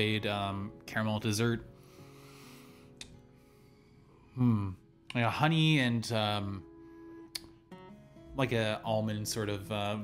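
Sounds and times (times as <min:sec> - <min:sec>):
faint acoustic guitar music: 0:00.0 - 0:10.0.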